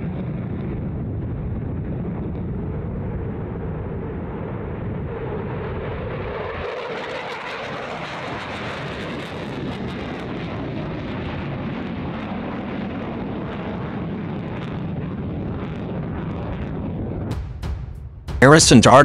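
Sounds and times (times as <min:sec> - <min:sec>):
fighter jet engine roar: 0:00.0 - 0:17.4.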